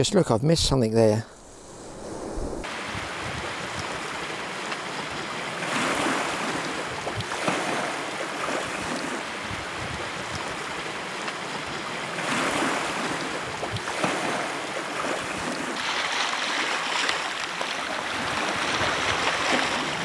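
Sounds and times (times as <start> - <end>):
surf washing on pebble beach: 2.6 - 20.0.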